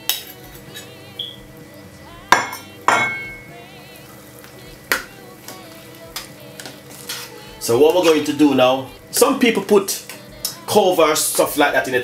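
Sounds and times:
utensils clanking on saucepan: 0:00.0 - 0:01.4, 0:02.3 - 0:03.5, 0:04.9 - 0:08.6.

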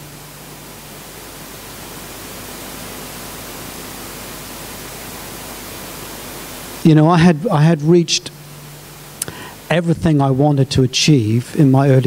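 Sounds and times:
faint steady hum: 0:00.0 - 0:12.0
steady hiss: 0:00.0 - 0:12.0
man speaking: 0:06.8 - 0:08.4, 0:09.7 - 0:12.0.

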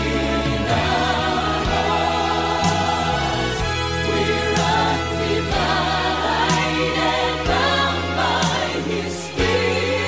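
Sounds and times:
band with sustained bass: 0:00.0 - 0:10.0
choir singing in harmony: 0:00.0 - 0:10.0.

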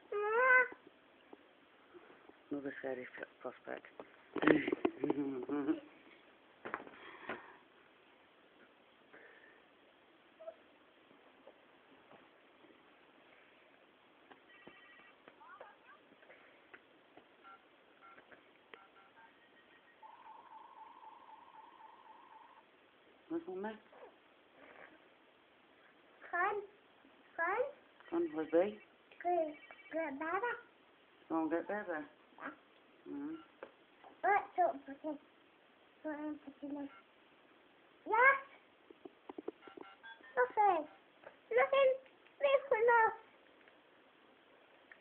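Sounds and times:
short electronic beeps: 0:14.5 - 0:15.2, 0:29.5 - 0:30.0
warbling electronic tone: 0:14.5 - 0:15.9.

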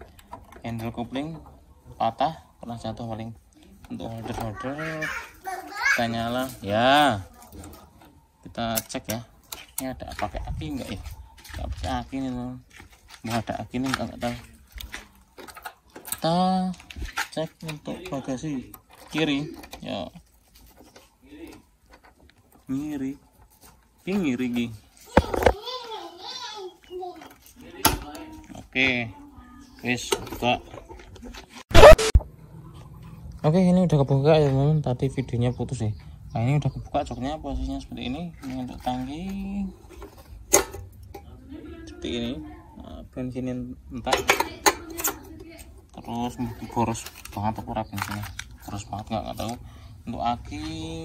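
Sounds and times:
light handling noise: 0:37.6 - 0:41.6, 0:44.0 - 0:49.8.

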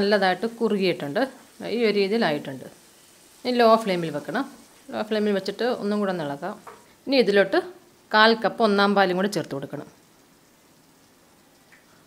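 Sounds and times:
woman speaking: 0:00.0 - 0:02.8, 0:03.5 - 0:10.0
faint sizzle of frying: 0:00.0 - 0:12.0.

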